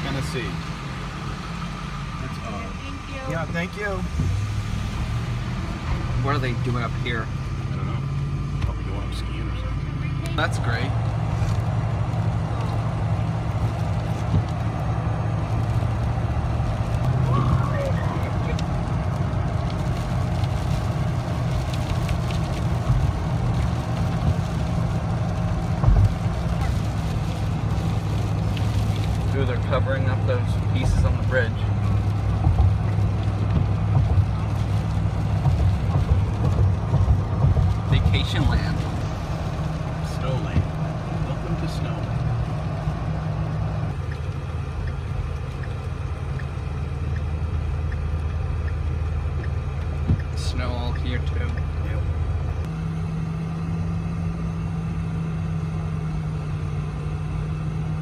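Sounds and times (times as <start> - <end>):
car engine and tyre drone: 0.0 - 58.0.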